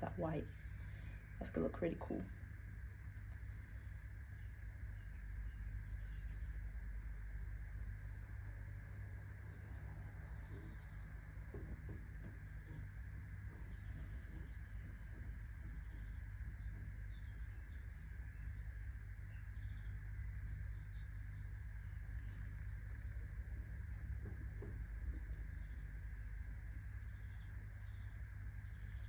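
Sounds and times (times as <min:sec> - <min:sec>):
small bird chirping: 0:00.0 - 0:06.8, 0:08.6 - 0:29.0
steady low hum: 0:00.0 - 0:29.0.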